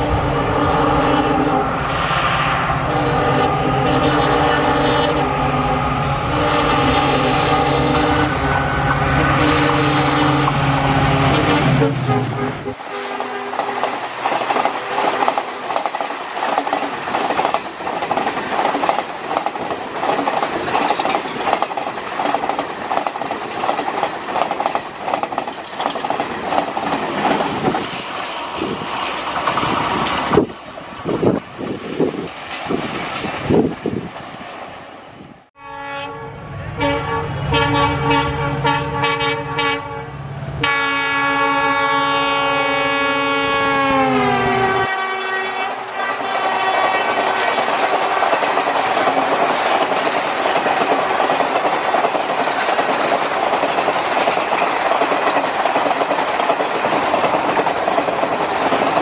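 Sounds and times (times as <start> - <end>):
locomotive horn blasts: 0.0 - 1.8, 2.8 - 14.0, 35.6 - 47.6
train wheels clattering on rails: 10.4 - 34.7, 46.0 - 59.0.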